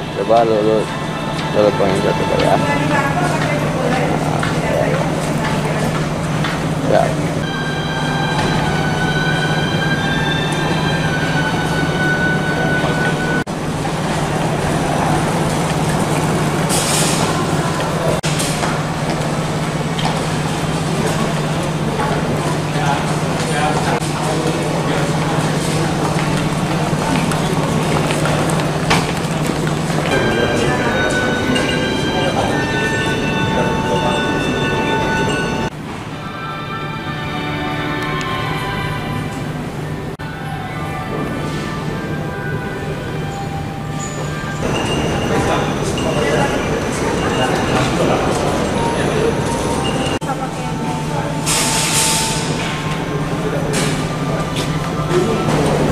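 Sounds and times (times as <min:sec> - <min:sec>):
background music with held notes: 0:00.0 - 0:05.0, 0:29.5 - 0:51.3
airport terminal hall noise: 0:00.0 - 0:55.9.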